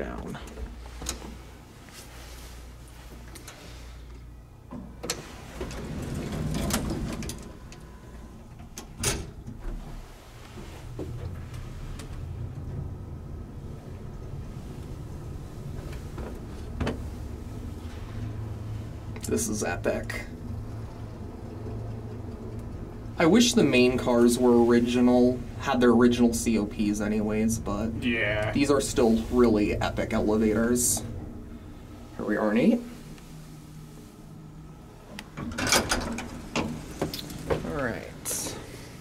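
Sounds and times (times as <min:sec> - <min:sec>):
elevator machinery hum: 0:00.0 - 0:39.0
elevator rush: 0:05.1 - 0:09.0, 0:09.7 - 0:39.0.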